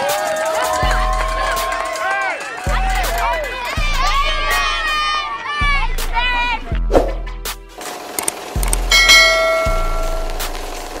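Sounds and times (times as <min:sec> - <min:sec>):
bell-like chime: 0:08.9 - 0:10.2.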